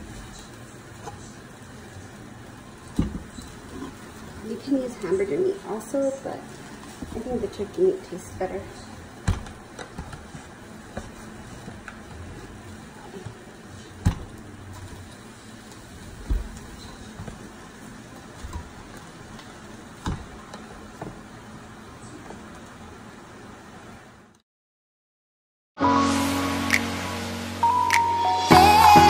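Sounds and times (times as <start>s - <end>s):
steady low hiss: 25.8s - 29.0s.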